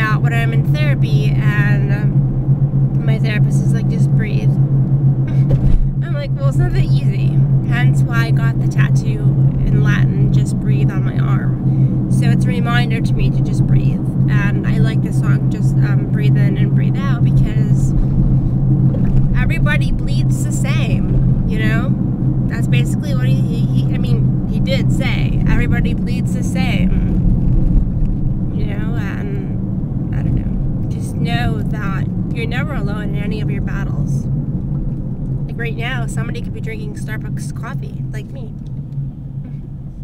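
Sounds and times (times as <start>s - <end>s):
woman talking: 0.0s - 2.2s, 3.0s - 4.6s, 5.3s - 17.9s, 19.3s - 27.2s, 28.5s - 34.2s, 35.5s - 38.5s
car engine and road drone: 0.0s - 40.0s.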